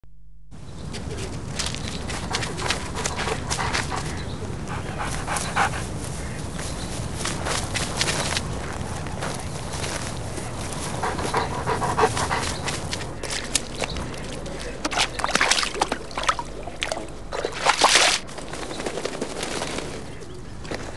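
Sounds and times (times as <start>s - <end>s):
dog panting: 2.1s - 6.6s, 10.4s - 13.3s
dog running through long grass: 5.0s - 11.4s.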